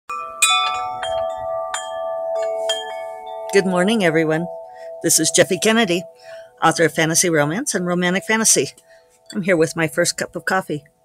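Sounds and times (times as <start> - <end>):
tubular wind chimes ringing: 0.1 - 10.3.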